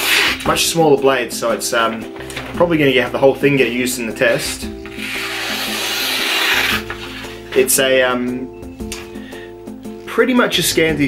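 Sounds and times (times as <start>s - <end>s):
knife slicing paper: 0.0s - 0.5s, 4.8s - 7.7s.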